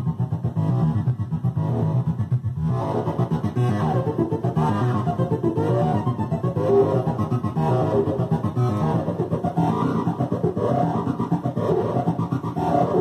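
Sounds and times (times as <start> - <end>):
synthesizer notes over heavy bass: 0.0 - 13.0.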